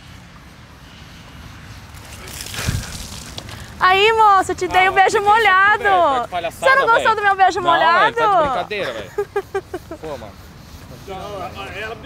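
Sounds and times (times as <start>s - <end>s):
faint outdoor hiss and rumble: 0.0s - 12.0s.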